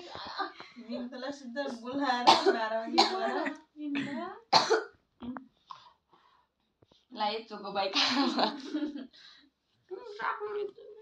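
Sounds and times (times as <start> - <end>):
young women's voices: 0.0 - 4.4, 9.9 - 11.0
person coughing: 2.3 - 3.4, 4.0 - 4.9.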